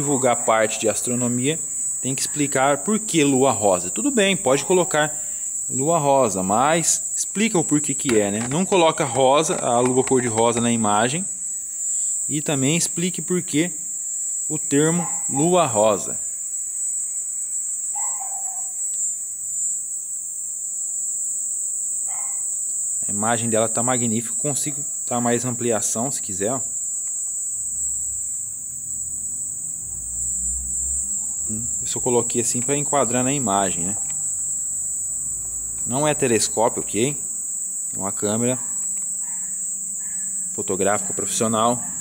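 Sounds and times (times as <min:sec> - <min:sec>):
crickets chirping: 0:00.0 - 0:42.0.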